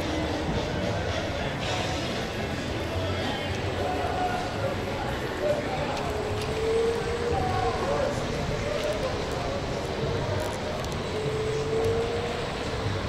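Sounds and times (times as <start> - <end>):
indistinct voices of passers-by: 0.0 - 13.0
street noise: 0.0 - 13.0.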